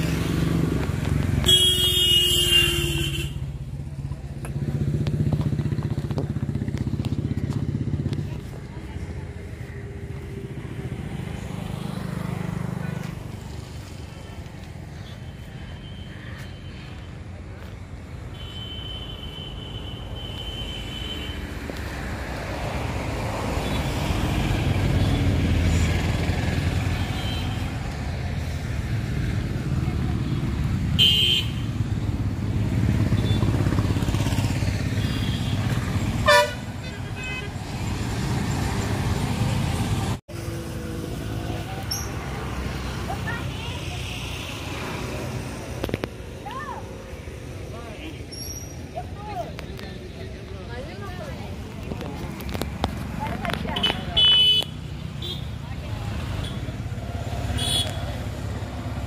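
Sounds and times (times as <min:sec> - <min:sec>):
road traffic engine rumble: 0:00.0 - 0:59.0.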